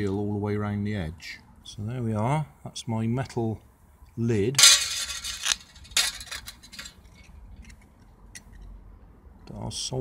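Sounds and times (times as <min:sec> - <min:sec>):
metal pieces scraping and clinking: 0:04.6 - 0:07.8.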